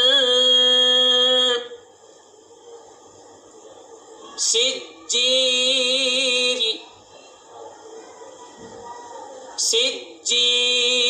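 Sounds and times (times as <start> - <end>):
man reciting a long vowel: 0.0 - 1.8, 4.5 - 6.8, 9.7 - 11.0.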